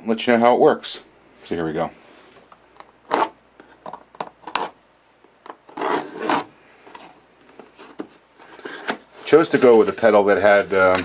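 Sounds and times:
cardboard rubbing on cardboard: 0:05.7 - 0:07.1.

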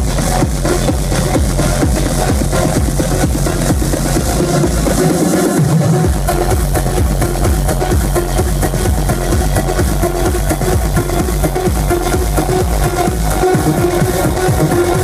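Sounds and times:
house dance music over sound system: 0:00.0 - 0:15.0.

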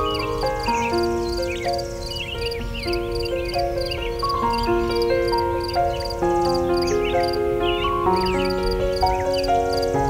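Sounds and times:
birds chirping: 0:00.0 - 0:10.0
soft slow piano music: 0:00.0 - 0:10.0.

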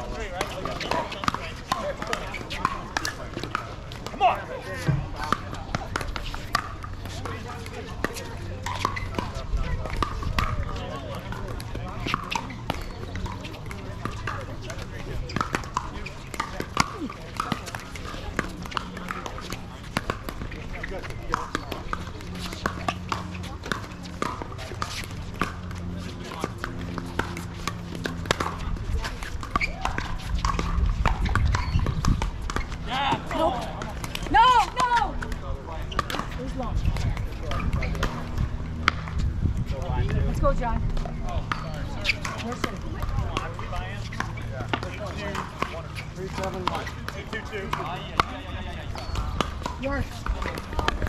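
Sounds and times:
paddles striking pickleball: 0:00.0 - 0:51.0
voices chattering: 0:00.0 - 0:51.0.

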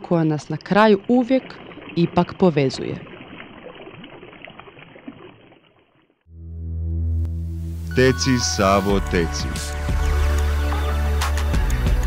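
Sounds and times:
deep synthesizer drone: 0:06.3 - 0:11.2.

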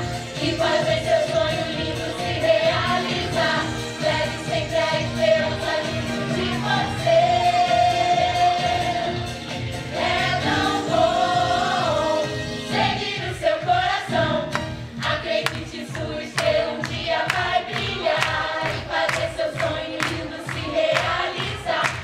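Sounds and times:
group singing show tune: 0:00.0 - 0:22.0
musical accompaniment with beat: 0:00.0 - 0:22.0.

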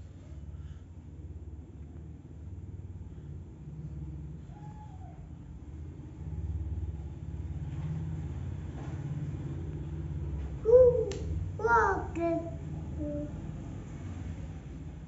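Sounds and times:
low uneven rumble: 0:00.0 - 0:15.0.

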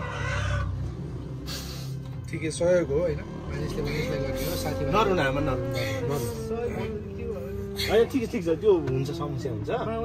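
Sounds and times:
noisy breath: 0:01.4 - 0:02.2
woman sobbing: 0:05.6 - 0:08.2.

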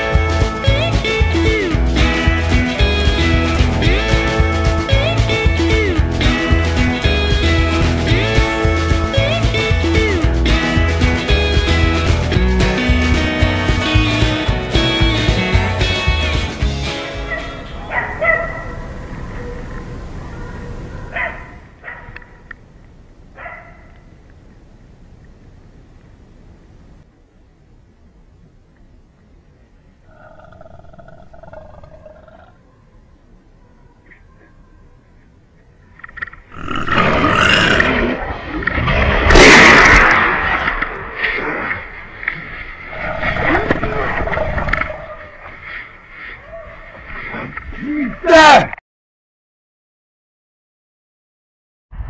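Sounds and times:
dogs barking: 0:17.2 - 0:19.6, 0:20.3 - 0:22.5, 0:23.4 - 0:24.0, 0:46.4 - 0:47.0
wild boar crying: 0:36.5 - 0:38.3.

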